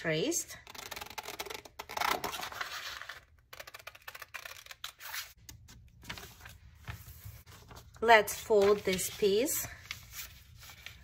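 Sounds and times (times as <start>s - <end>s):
paper rustling: 2.3s - 11.0s.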